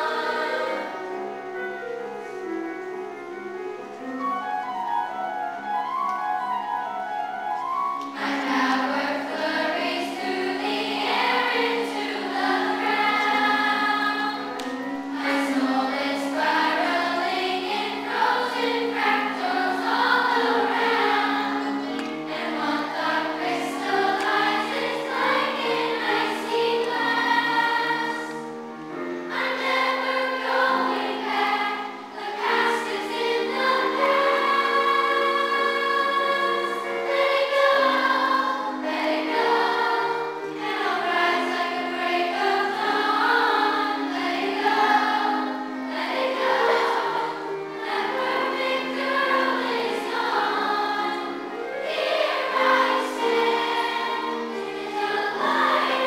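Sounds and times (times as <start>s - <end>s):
children's choir singing: 0.0s - 56.0s.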